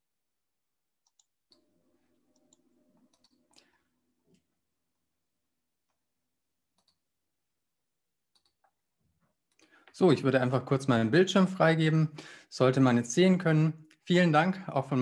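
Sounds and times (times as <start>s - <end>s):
soft clicks: 1.0s - 1.7s, 2.3s - 4.5s, 6.7s - 7.0s, 8.3s - 8.8s.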